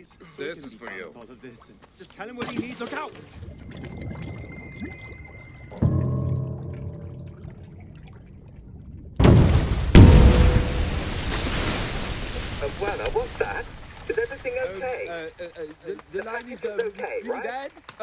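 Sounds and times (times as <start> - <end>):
churning bubbling water: 2.4 - 16.3
heavy splash: 2.6 - 14.9
low droning music chord: 5.6 - 8.8
rush of water: 9.2 - 15.6.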